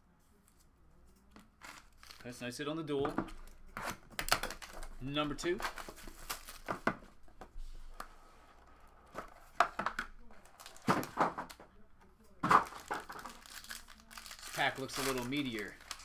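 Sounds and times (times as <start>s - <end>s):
plastic wrapper crinkling and tearing: 1.6s - 2.3s, 4.2s - 6.8s, 10.1s - 11.2s, 12.5s - 16.0s.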